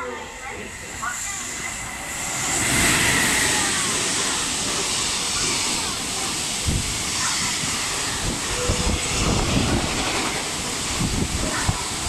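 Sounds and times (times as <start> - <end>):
electric locomotive passing: 0.0 - 12.0.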